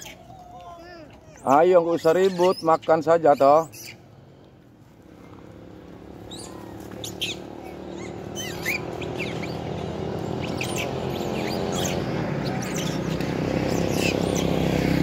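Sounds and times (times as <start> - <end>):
monkeys squeaking: 0.0 - 0.5, 1.1 - 4.0, 6.1 - 14.7
motorcycle engine approaching: 4.1 - 15.0.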